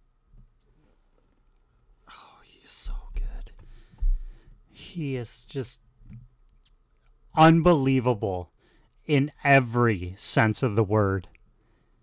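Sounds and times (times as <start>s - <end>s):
man whispering: 2.0s - 3.7s, 4.7s - 5.8s
thumps against microphone: 3.2s - 4.4s.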